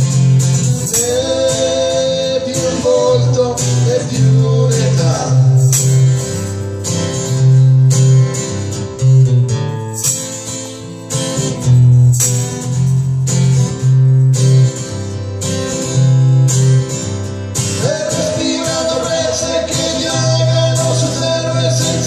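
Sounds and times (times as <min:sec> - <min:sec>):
acoustic guitar strummed: 0:00.0 - 0:22.0.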